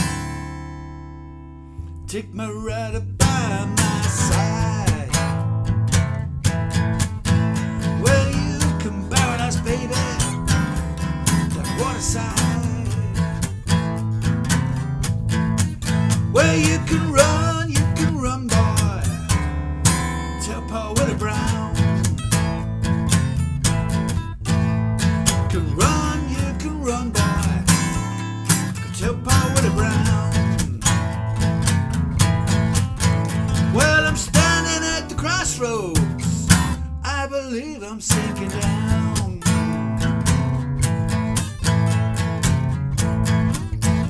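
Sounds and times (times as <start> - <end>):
acoustic guitar playing blues: 0.0 - 44.0.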